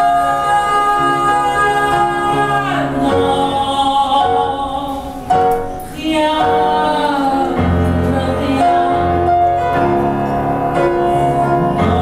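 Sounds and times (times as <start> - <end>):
singer holding long note: 0.0 - 5.3
instrumental accompaniment: 0.0 - 12.0.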